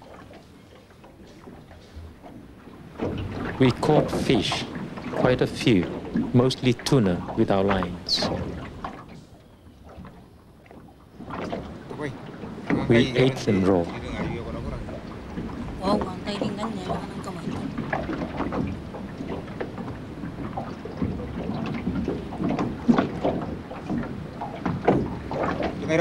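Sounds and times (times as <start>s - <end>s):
water lapping against hull: 0.0s - 26.0s
men talking: 3.6s - 8.6s, 11.8s - 15.0s, 25.8s - 26.0s.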